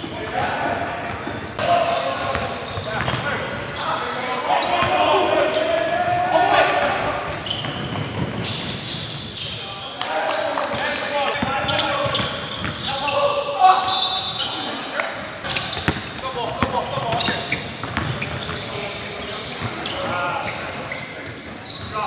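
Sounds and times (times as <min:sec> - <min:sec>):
players' voices and shouts: 0:00.0 - 0:22.0.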